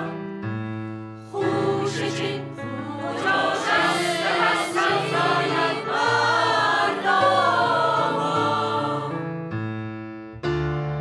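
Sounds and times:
mixed choir singing: 0:01.3 - 0:09.3.

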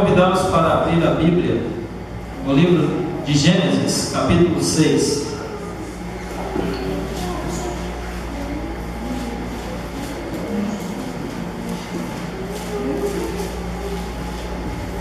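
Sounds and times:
low room hum: 0:00.0 - 0:15.0
soft low murmuring: 0:00.0 - 0:15.0.

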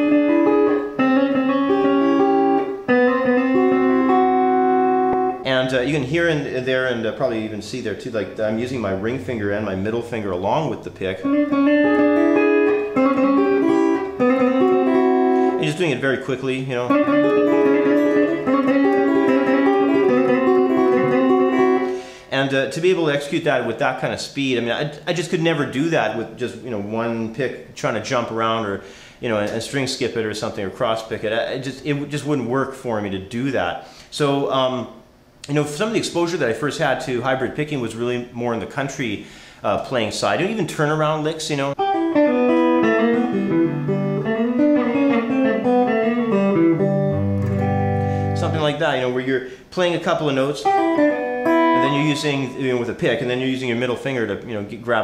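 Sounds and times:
electric guitar picking fast lick: 0:00.0 - 0:05.5, 0:11.2 - 0:15.7, 0:16.9 - 0:22.2, 0:41.8 - 0:48.8, 0:50.6 - 0:52.8.

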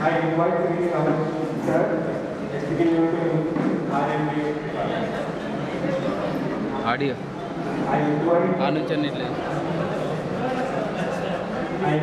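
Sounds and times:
voices talking in large room: 0:00.0 - 0:12.0.

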